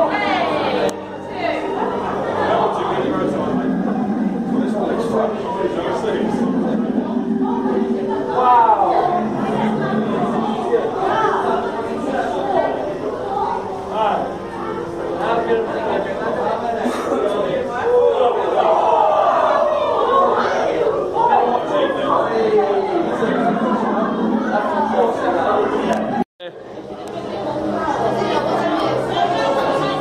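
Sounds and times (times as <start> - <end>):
echoing indistinct chatter: 0.0 - 30.0.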